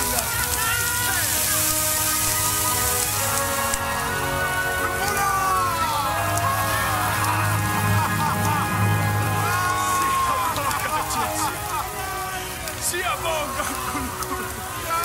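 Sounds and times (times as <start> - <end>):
film soundtrack music: 0.0 - 15.0
people's voices crying out: 0.0 - 15.0
rain falling: 0.0 - 15.0.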